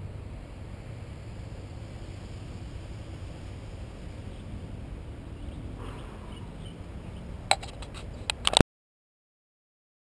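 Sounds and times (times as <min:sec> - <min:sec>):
low steady rumble: 0:00.0 - 0:08.6
sharp metallic click: 0:07.5 - 0:08.6.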